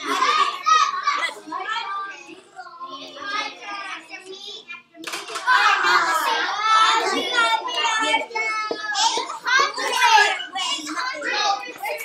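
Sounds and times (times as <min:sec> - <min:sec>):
children chattering: 0:00.0 - 0:12.0.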